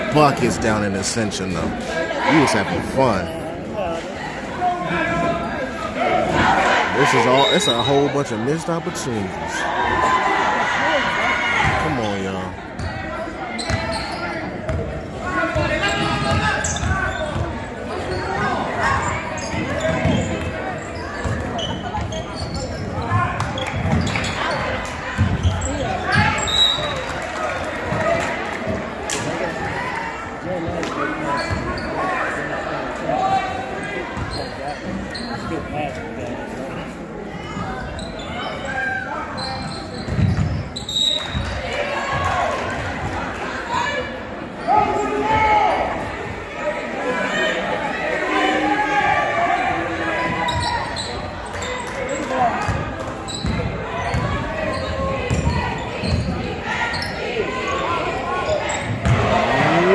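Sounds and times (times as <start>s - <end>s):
people talking: 0.0s - 4.2s, 6.4s - 9.7s, 11.6s - 12.6s
basketball bouncing on court: 14.6s - 17.6s, 19.0s - 20.6s, 21.2s - 24.6s, 40.0s - 40.6s, 52.6s - 56.4s, 58.8s - 59.4s.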